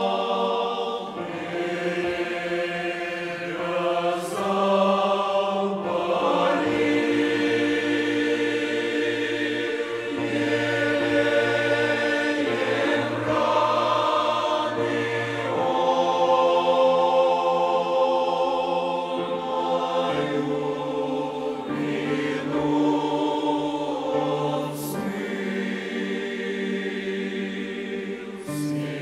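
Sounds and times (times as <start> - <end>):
choir singing a slow hymn: 0.0 - 29.0.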